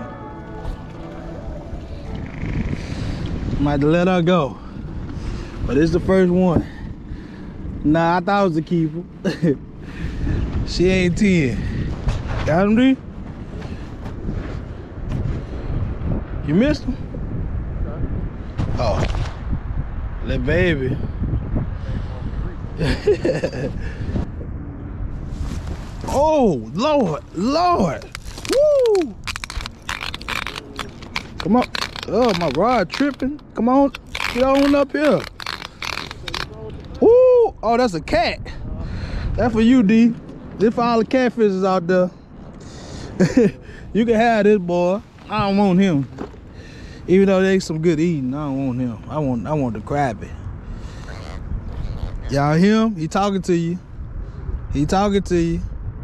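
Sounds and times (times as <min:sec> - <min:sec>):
wind buffeting microphone: 0:00.0 - 0:56.0
fishing reel clicking and scraping: 0:34.0 - 0:36.5.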